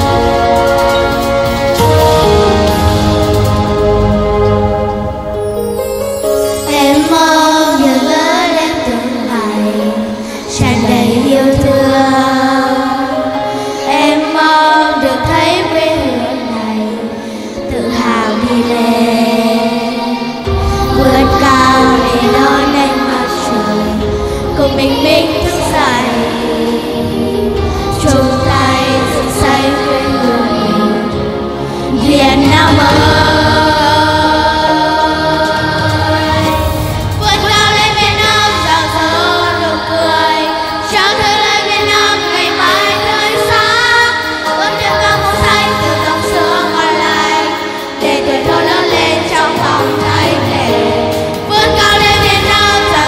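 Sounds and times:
instrumental backing music: 0.0s - 53.0s
children singing: 6.4s - 53.0s.

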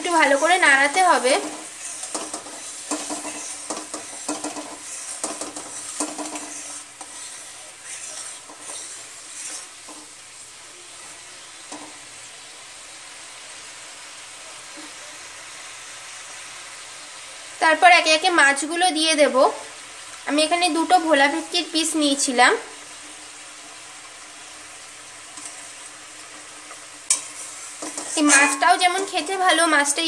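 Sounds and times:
spoon scraping and knocking pan: 0.0s - 10.2s, 11.0s - 12.0s, 26.3s - 29.7s
masala sizzling in oil: 0.0s - 30.0s.

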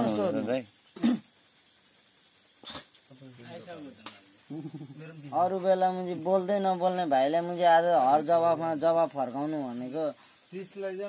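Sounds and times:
faint high hiss: 0.0s - 11.0s.

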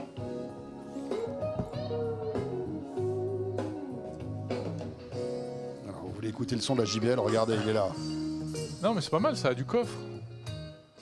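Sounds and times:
guitar music through speaker: 0.0s - 11.0s.

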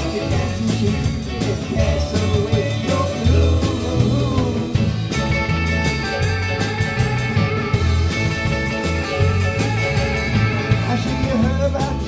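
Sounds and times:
electric lead guitar: 0.0s - 12.0s
rock band playing instrumental: 0.0s - 12.0s.

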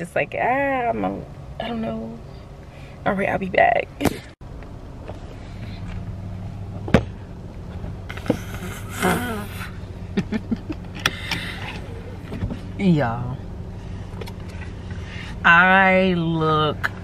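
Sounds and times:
car engine hum inside cabin: 0.0s - 17.0s
person laughing: 8.3s - 12.2s.

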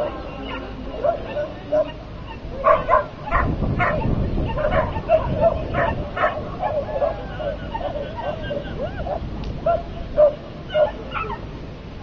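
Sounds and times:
dog barking in high yips: 0.5s - 11.4s.

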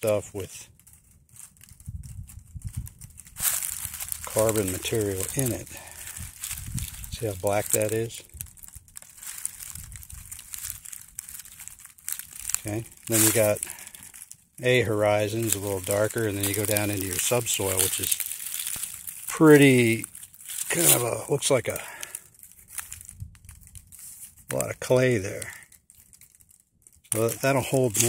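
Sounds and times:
dry leaves and twigs crackling: 0.0s - 28.0s
fingers crumbling damp soil: 0.0s - 28.0s.

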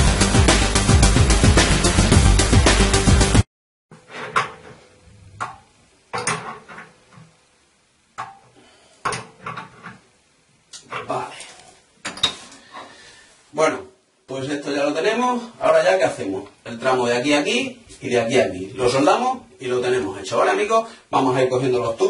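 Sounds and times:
background music: 0.0s - 3.4s.

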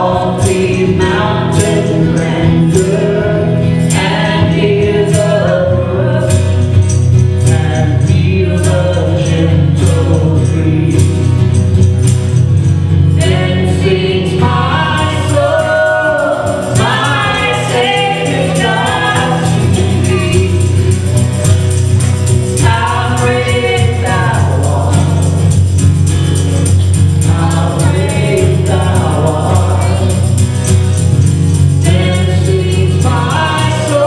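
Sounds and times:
man singing: 0.0s - 6.6s, 7.4s - 11.5s, 13.1s - 25.6s, 27.2s - 30.4s, 31.8s - 34.0s
woman singing: 0.0s - 6.8s, 7.4s - 11.4s, 13.2s - 21.6s, 22.6s - 25.5s, 27.2s - 30.4s, 31.8s - 34.0s
acoustic guitar: 0.0s - 34.0s.

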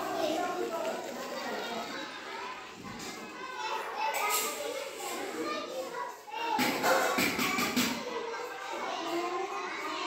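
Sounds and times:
children talking and calling out: 0.0s - 10.0s.

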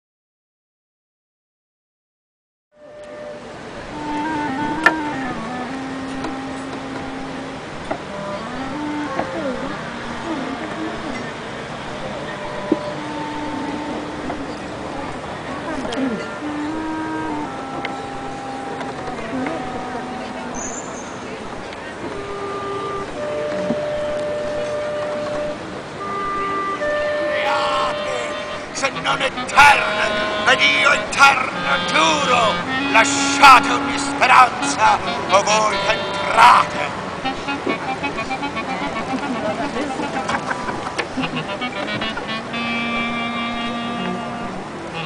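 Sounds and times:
clarinet playing held notes: 2.8s - 21.0s, 22.1s - 45.0s
background hiss: 2.8s - 45.0s.

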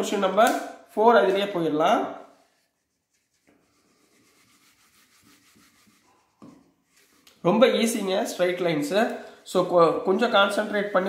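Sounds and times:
whiteboard being wiped: 2.2s - 8.1s, 10.4s - 11.0s.

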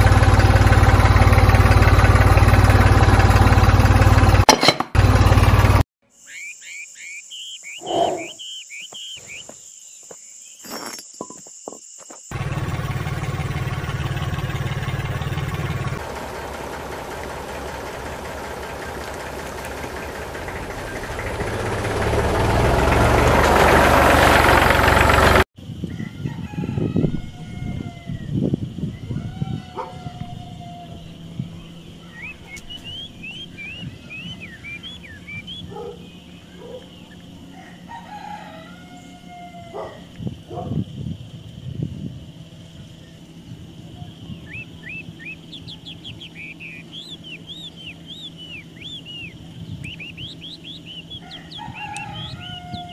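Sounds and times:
birds calling and chirping: 6.0s - 41.5s, 42.4s - 52.9s
running noise with low hum: 25.6s - 52.9s.

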